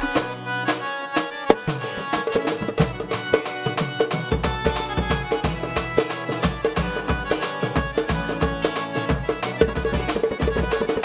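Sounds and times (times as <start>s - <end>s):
electronic keyboard melody: 0.0s - 11.0s
quick percussion beat: 0.0s - 11.0s.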